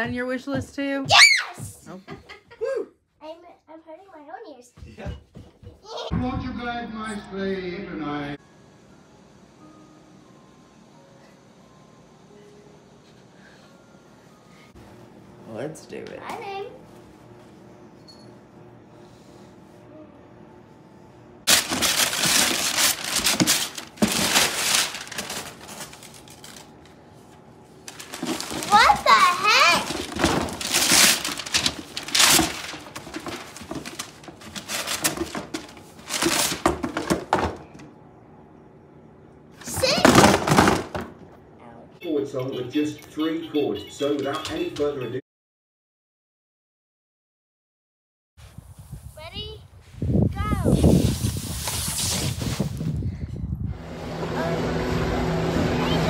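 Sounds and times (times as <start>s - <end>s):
wrapping paper tearing and rustling: 21.5s - 26.9s, 27.8s - 37.1s, 50.8s - 52.8s.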